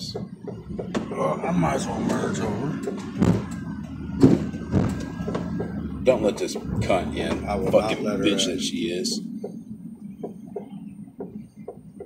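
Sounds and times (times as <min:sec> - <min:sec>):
car road and engine noise: 0:00.0 - 0:12.0
dull thumps: 0:02.8 - 0:08.0.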